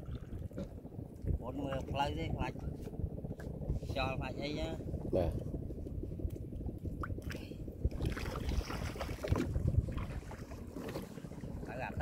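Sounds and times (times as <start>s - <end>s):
low wind rumble on microphone: 0.0s - 12.0s
net hauled out of water: 8.0s - 11.6s.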